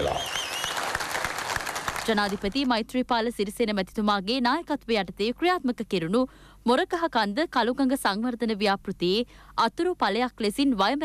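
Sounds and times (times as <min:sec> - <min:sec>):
crowd applauding: 0:00.0 - 0:02.6.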